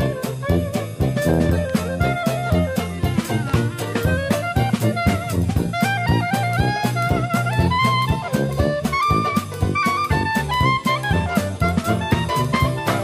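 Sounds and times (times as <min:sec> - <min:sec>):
jazz band playing: 0:00.0 - 0:13.0.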